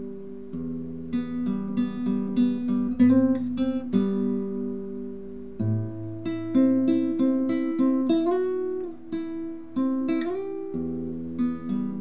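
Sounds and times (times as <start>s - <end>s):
fingerpicked classical guitar: 0.0s - 12.0s.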